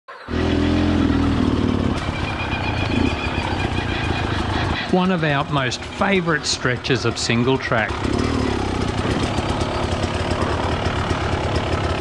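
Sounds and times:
two-stroke dirt bike engine: 0.3s - 12.0s.

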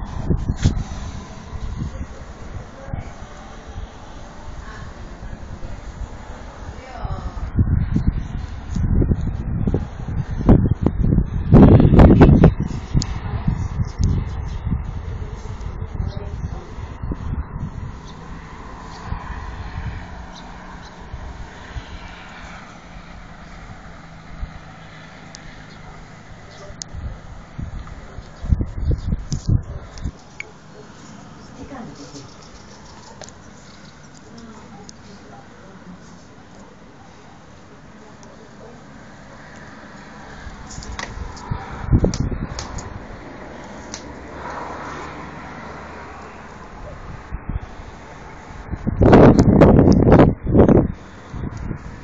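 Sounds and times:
engine drone: 0.0s - 14.1s
car driving past on wet road: 18.2s - 26.5s, 42.6s - 47.0s.

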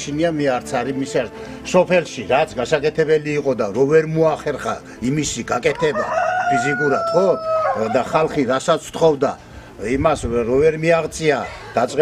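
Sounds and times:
man talking: 0.0s - 12.0s
rooster crowing: 5.7s - 8.4s.

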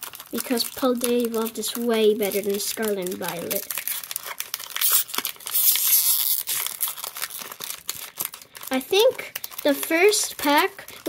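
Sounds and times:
foil wrapper tearing and crinkling: 0.0s - 11.0s.

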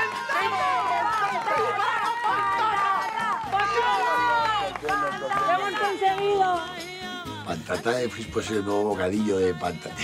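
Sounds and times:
hand-clapping: 0.0s - 7.2s
people cheering and shouting: 0.0s - 7.6s
background music: 0.0s - 10.0s.

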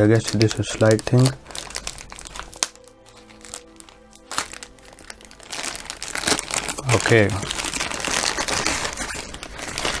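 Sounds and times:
plastic packaging crinkling: 0.0s - 10.0s
soft background music: 0.0s - 10.0s.

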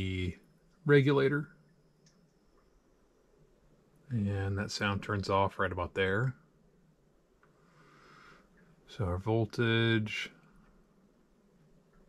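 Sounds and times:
faint breath: 7.5s - 8.8s.

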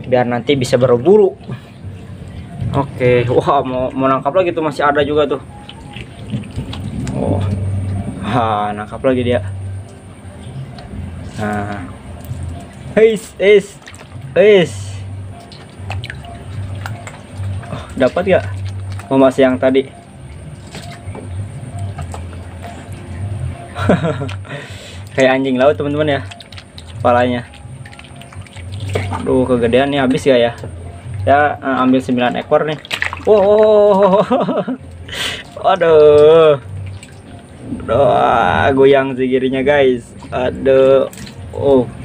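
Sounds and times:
water splashing in plastic tub: 0.5s - 9.6s, 11.4s - 42.0s.

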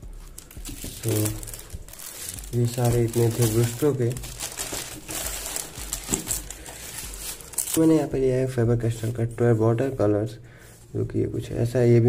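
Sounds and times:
plastic packaging crinkling: 0.2s - 8.1s.

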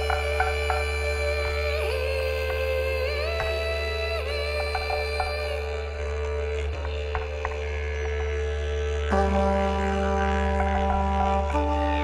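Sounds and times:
didgeridoo drone: 0.0s - 12.0s.

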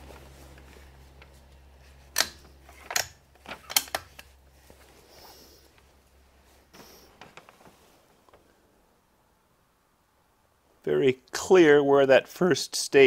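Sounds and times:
low steady hum: 0.0s - 12.2s.

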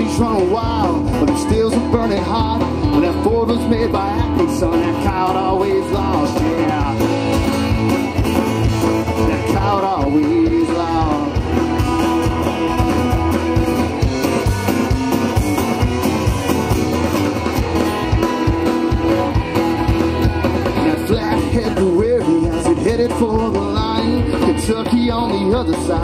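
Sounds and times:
country-rock band playing live: 0.0s - 26.0s.

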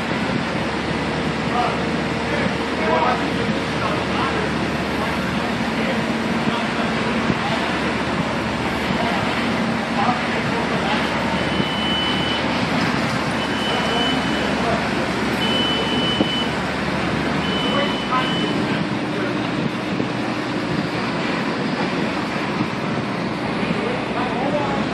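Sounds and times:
diesel engines running under load: 0.0s - 24.9s
high beeps: 11.3s - 12.5s, 13.4s - 14.6s, 15.4s - 16.6s, 17.4s - 18.7s.

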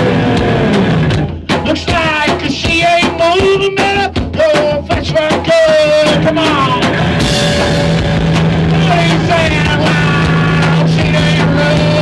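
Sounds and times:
rock band playing: 0.0s - 12.0s
man singing: 1.4s - 7.1s, 8.7s - 12.0s.

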